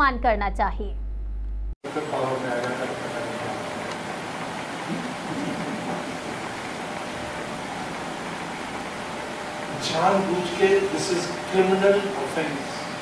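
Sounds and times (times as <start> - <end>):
room noise hiss: 1.8 - 13.0.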